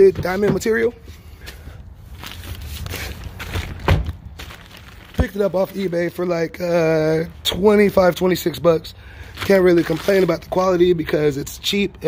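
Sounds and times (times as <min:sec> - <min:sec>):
footsteps: 0:00.0 - 0:06.0.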